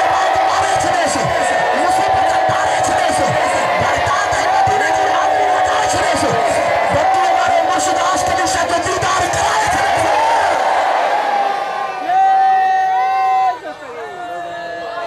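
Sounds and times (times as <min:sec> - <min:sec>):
men chanting over loudspeaker: 0:00.0 - 0:10.6
crowd voicing along: 0:00.0 - 0:12.0.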